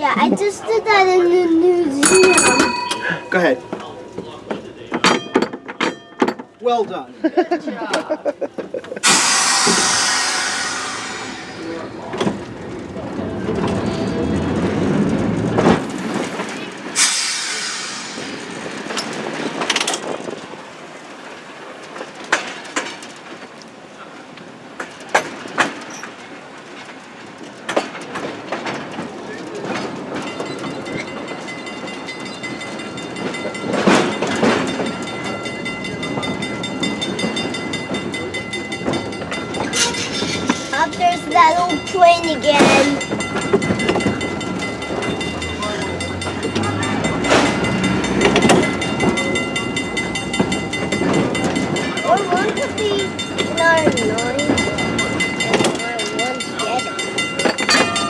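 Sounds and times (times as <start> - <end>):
trolley car rumble: 0.0 - 58.0
trolley wheels clacking over rail joints: 0.0 - 58.0.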